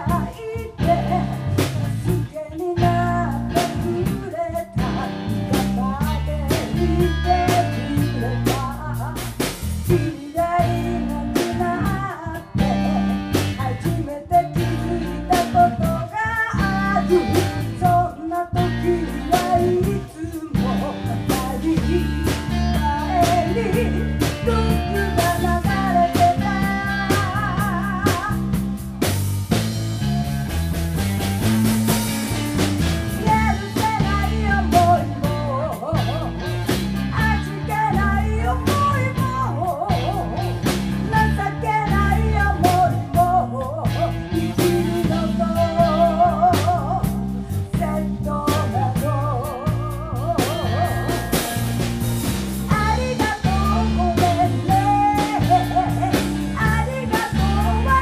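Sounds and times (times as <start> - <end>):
person singing: 0.0 - 28.6, 33.1 - 51.8, 52.6 - 58.0
live rock band playing: 0.0 - 58.0.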